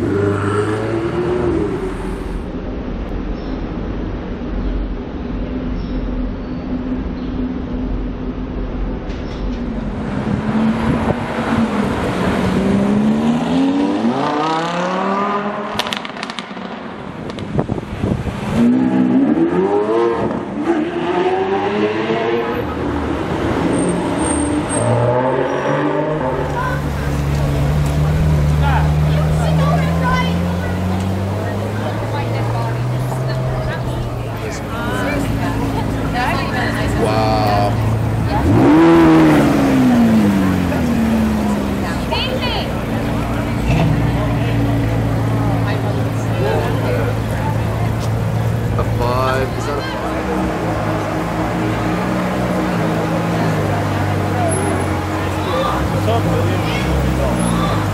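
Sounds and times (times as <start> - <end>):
sports car engines revving: 0.0 - 57.9.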